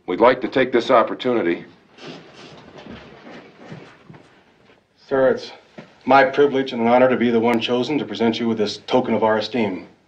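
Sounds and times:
low noisy hiss: 0.0 - 3.2, 4.4 - 10.0
soft knocks or shuffles: 5.7 - 6.0.

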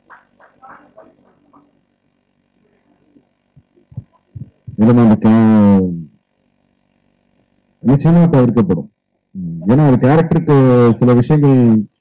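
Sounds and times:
microphone thumps: 3.5 - 4.8
man speaking into microphone: 4.4 - 6.1, 7.8 - 11.9.

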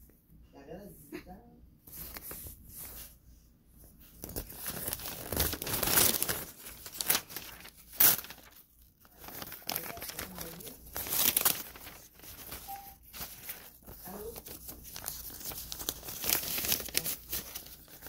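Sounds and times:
paper tearing and crumpling: 4.1 - 18.0.

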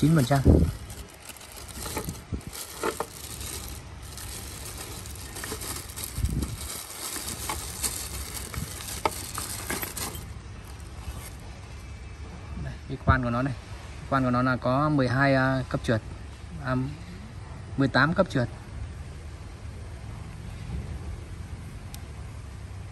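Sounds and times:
plastic wrapping crinkling: 0.0 - 11.5.

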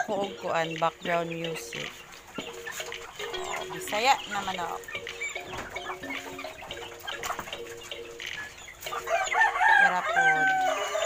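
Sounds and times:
chickens clucking: 0.0 - 11.0
rooster crowing: 9.0 - 11.0.

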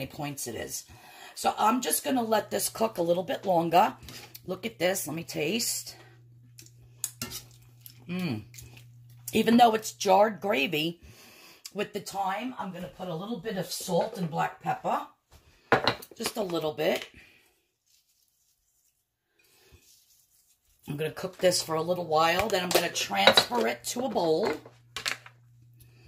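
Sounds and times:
metal spoon scraping skillet: 7.0 - 7.7.

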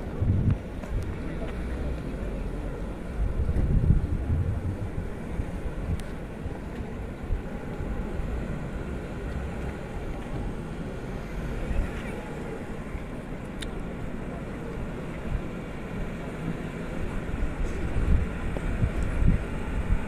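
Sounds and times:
wind buffeting microphone: 0.0 - 14.2, 14.9 - 20.0.

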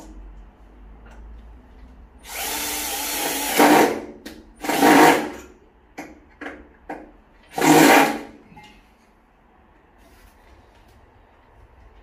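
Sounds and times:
electric drill driving screw: 2.2 - 4.0, 4.6 - 5.4.

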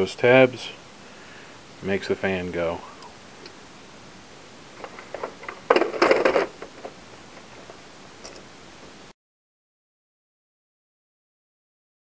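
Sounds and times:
lamp module clattering: 4.8 - 8.5.

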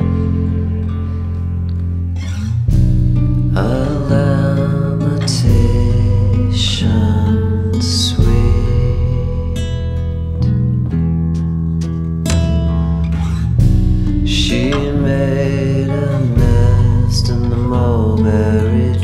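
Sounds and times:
instrumental guitar and bass music: 0.0 - 19.0.

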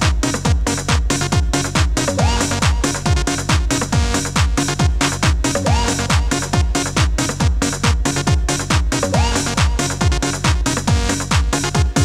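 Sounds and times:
electronic dance music: 0.0 - 12.0
kick drum beat: 0.0 - 12.0.

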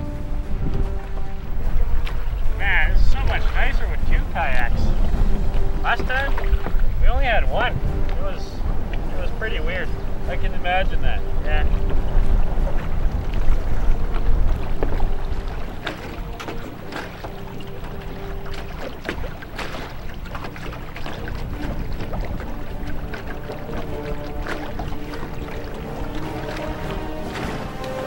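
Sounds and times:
kayak paddles splashing: 0.0 - 28.0
soft background music: 0.0 - 28.0
water lapping at hulls: 0.0 - 28.0
wind rumbling on microphone: 0.0 - 28.0.

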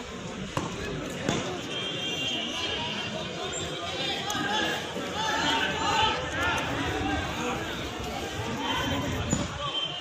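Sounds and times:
voices of players: 0.0 - 10.0.

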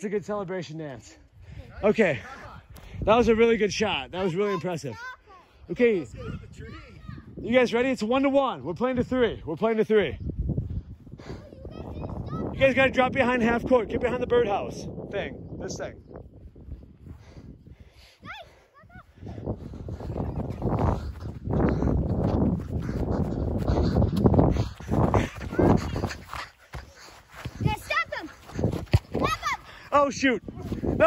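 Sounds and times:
wind buffeting microphone: 1.2 - 31.0
running footsteps on grass: 16.1 - 31.0.

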